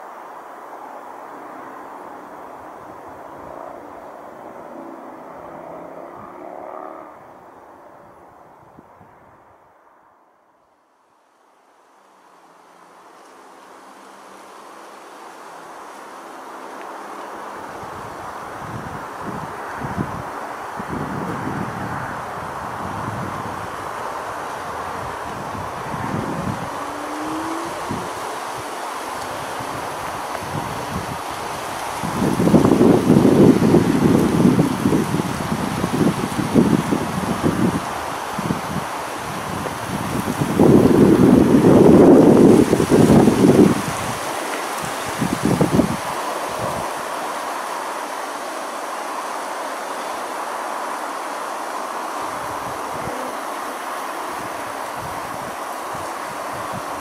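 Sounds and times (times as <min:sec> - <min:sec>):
wind buffeting microphone: 0:17.6 - 0:47.1, 0:54.3 - 0:57.0.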